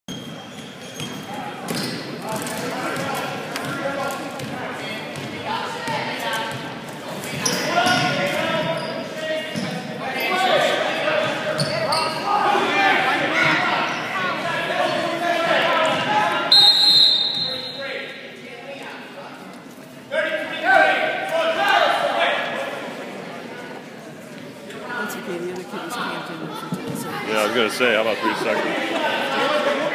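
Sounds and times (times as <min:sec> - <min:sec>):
referee whistle: 0:16.5 - 0:17.8.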